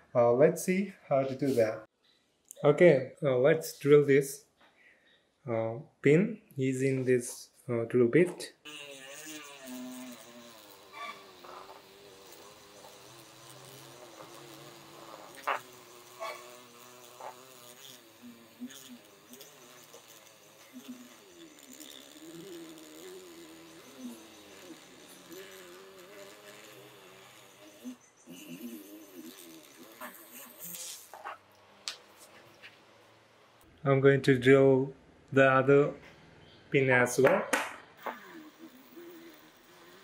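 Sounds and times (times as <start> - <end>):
small electric drill buzzing: 8.6 - 31.2, 38.0 - 40.0.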